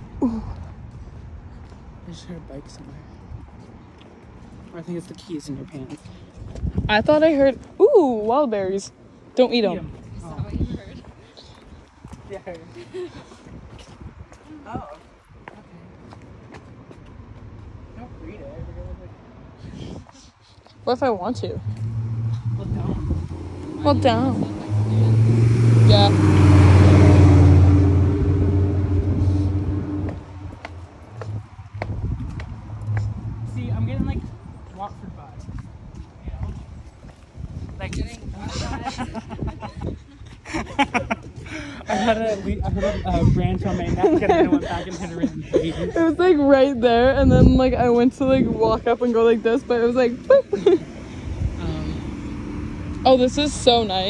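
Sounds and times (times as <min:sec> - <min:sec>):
road traffic rumble: 0:00.0 - 0:54.0
footsteps on concrete: 0:02.7 - 0:08.4, 0:09.9 - 0:17.7, 0:30.0 - 0:33.3, 0:34.1 - 0:38.3
car passing by: 0:21.3 - 0:34.5, 0:45.7 - 0:54.0.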